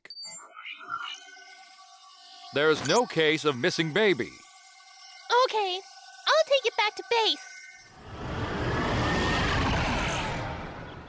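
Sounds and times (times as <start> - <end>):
rushing whoosh: 8.0 - 11.0.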